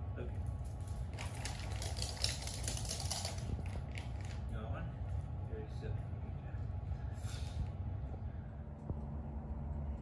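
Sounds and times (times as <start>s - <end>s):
steady low hum: 0.0s - 10.0s
dog claws clicking on hard floor: 0.6s - 4.4s.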